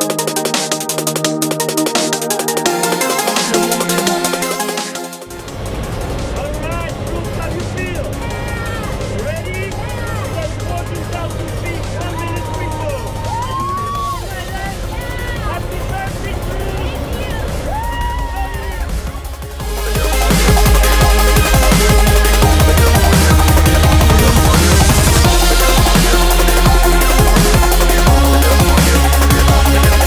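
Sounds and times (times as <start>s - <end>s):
plane engine drone: 0.0s - 30.0s
excited voices shouting: 7.6s - 19.3s.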